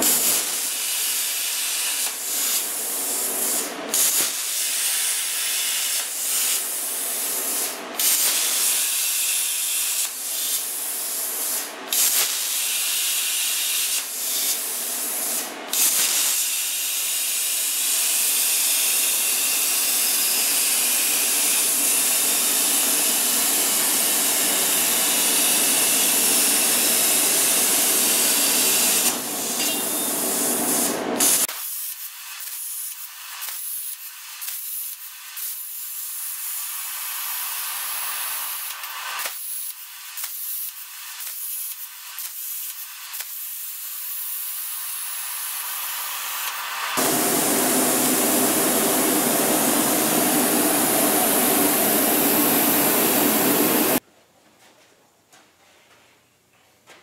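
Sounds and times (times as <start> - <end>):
plasma torch hissing: 0.0 - 54.0.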